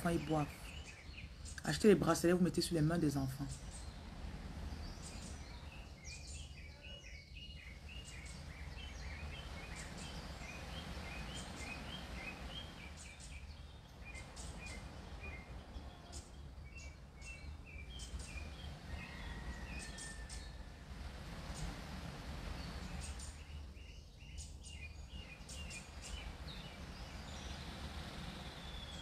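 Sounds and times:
birds chirping: 0.0 - 29.0.

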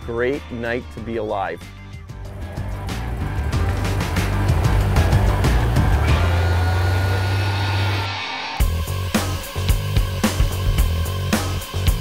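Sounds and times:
background music: 0.0 - 12.0
mud motor running: 2.2 - 8.1.

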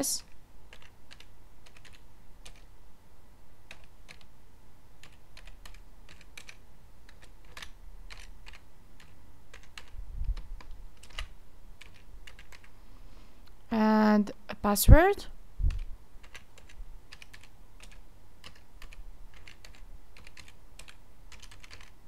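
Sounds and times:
typing on computer keyboard: 0.0 - 2.7, 3.6 - 4.3, 5.0 - 12.7, 15.7 - 22.0.

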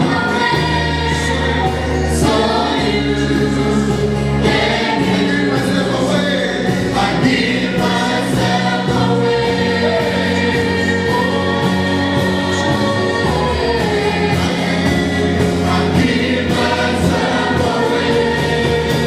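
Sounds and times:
choir singing gospel song: 0.0 - 19.0.

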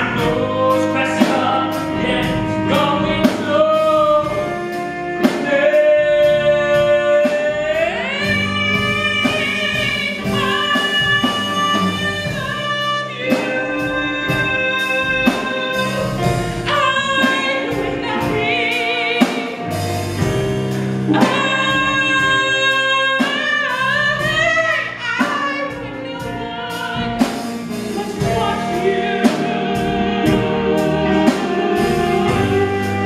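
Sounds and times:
band accompaniment with steady beat: 0.0 - 33.0.

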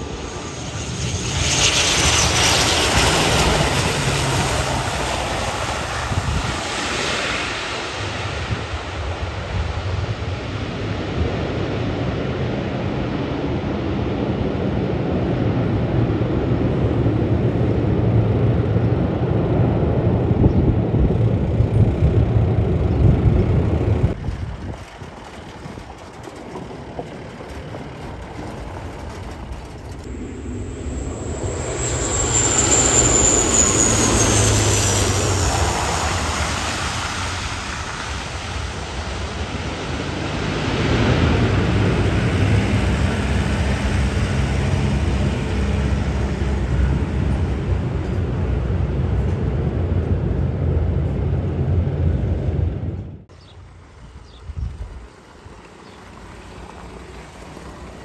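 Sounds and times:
turboprop engines running on runway: 0.0 - 58.0
turboprop plane approaching with whine: 0.0 - 58.0.

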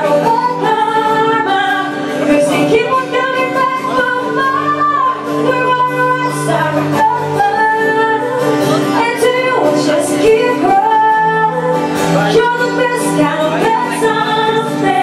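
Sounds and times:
acoustic guitar: 0.0 - 15.0.

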